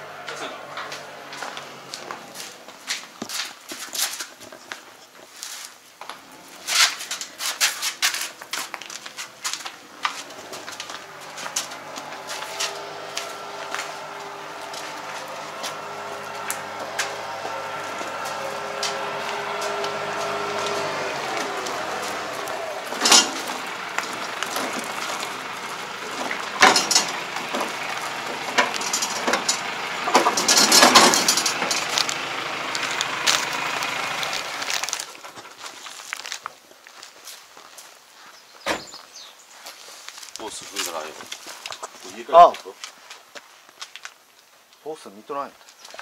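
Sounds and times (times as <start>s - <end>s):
metal clanks and knocks: 0.2s - 1.6s, 9.5s - 32.3s.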